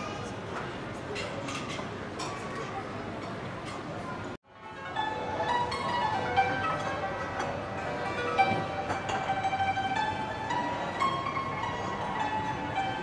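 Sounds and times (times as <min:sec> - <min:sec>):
plucked zither melody: 0:04.5 - 0:13.0.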